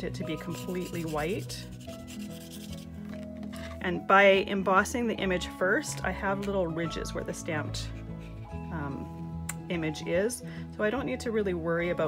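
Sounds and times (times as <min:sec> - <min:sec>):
brush scrubbing on paper: 0:00.4 - 0:02.9.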